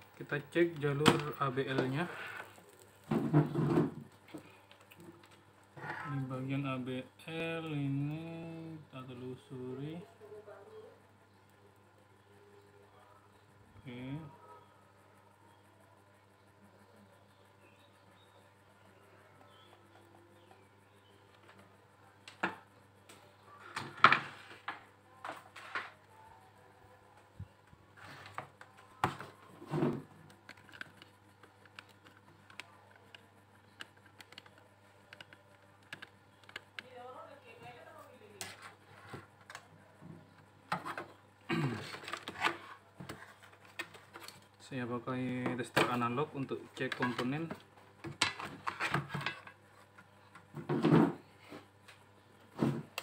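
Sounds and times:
low steady hum: 0.0 - 53.0
multimeter probes clicking: 30.4 - 36.9.

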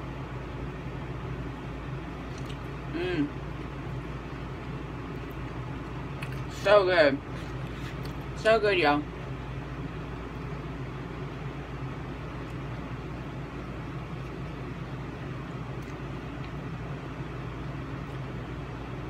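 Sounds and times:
air conditioner hum and hiss: 0.0 - 19.0.

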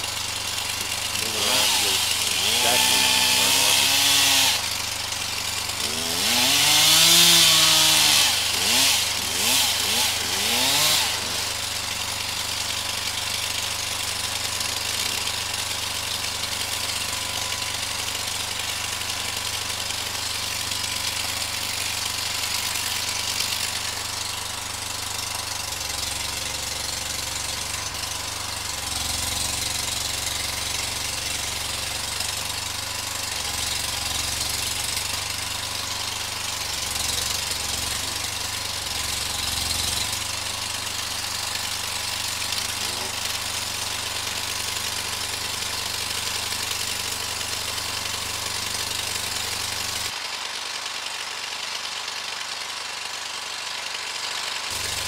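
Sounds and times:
truck engine idling: 0.0 - 55.0.

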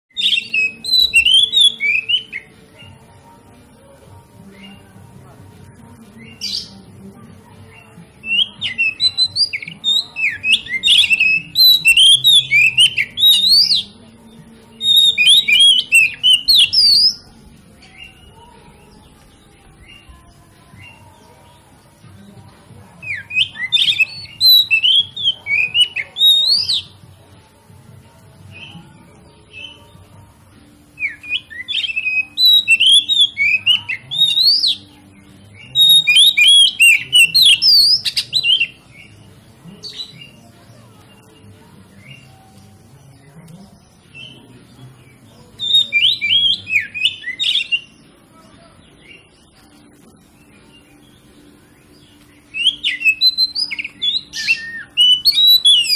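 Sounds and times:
magpie-robin singing whistled notes: 0.1 - 3.0, 6.0 - 6.8, 7.7 - 21.6, 23.0 - 27.1, 28.5 - 30.1, 30.8 - 48.1, 48.8 - 55.9.

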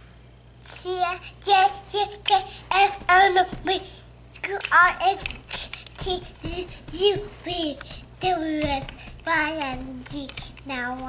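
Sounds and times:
toddler singing a chant: 0.7 - 11.0.

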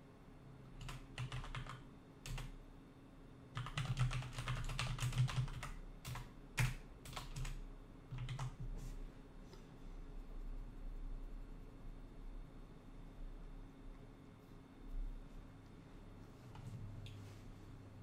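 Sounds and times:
typing on computer keyboard: 0.8 - 2.6, 3.5 - 8.7.

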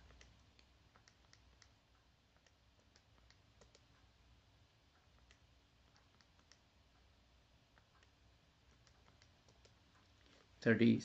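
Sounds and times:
faint small clicks: 0.0 - 1.8, 2.4 - 4.0, 5.0 - 6.7, 7.7 - 10.5.

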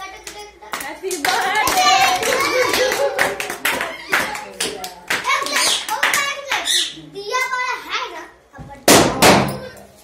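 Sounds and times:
people clapping: 0.0 - 6.8
children's and adults' voices: 0.0 - 10.0.

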